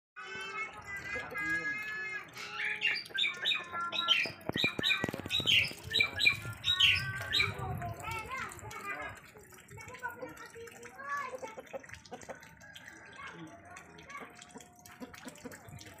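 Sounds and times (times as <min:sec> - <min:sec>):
bird squawking: 0:02.4 - 0:07.6.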